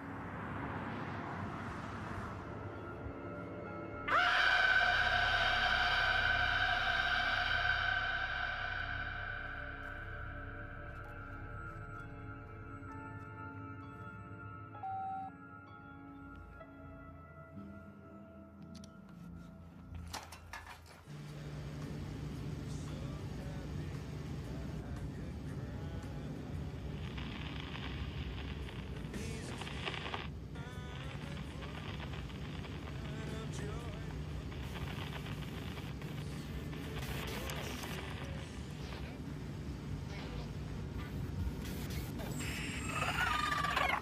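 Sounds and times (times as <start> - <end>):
low drone of car cabin: 0.0 - 14.4, 21.1 - 44.0
soft ambient music: 0.0 - 44.0
car stereo playing: 26.8 - 44.0.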